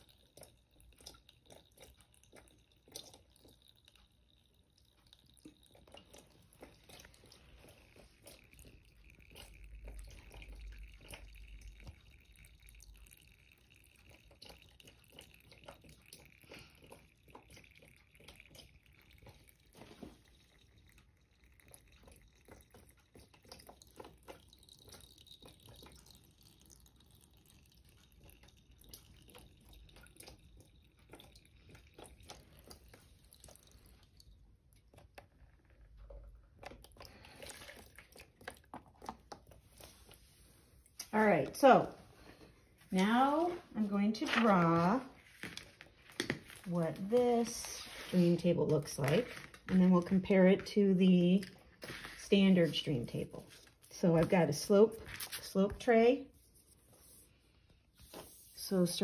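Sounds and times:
water dripping and trickling: 0:00.0 - 0:59.0.

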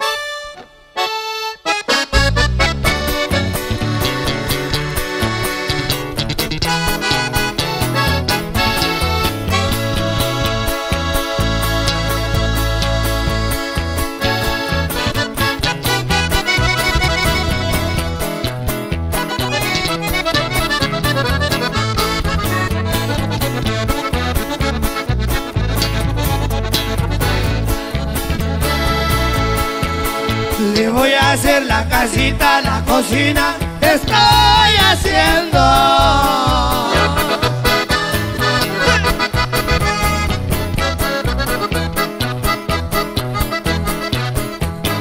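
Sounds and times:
accordion solo phrases: 0:00.0 - 0:45.0
band playing with strong bass: 0:00.0 - 0:45.0.

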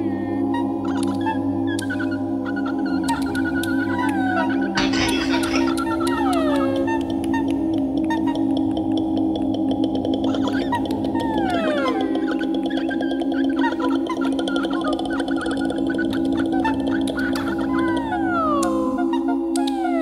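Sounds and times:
woman's low sustained vocal drones: 0:00.0 - 0:00.6, 0:04.2 - 0:06.9
falling vocal glissandi: 0:00.0 - 0:07.5
vocal clicks and gurgling: 0:04.7 - 0:17.9.

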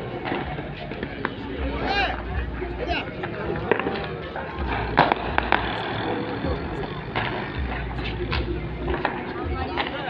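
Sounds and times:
distant music: 0:00.0 - 0:10.0
distant voices: 0:00.0 - 0:10.0.

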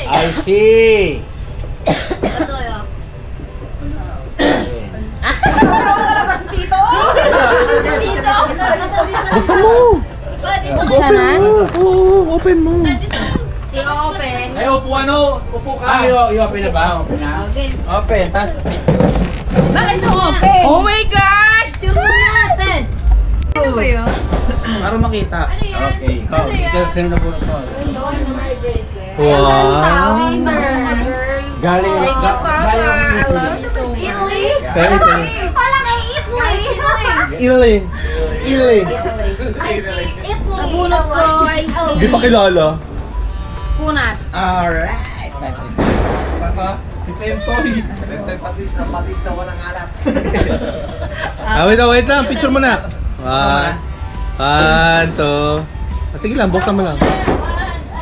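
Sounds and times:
people talking over one another: 0:00.0 - 0:58.0.

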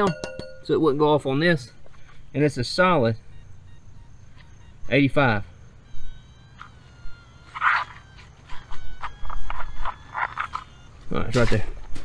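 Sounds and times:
metal detector signal tones: 0:02.0 - 0:12.0.

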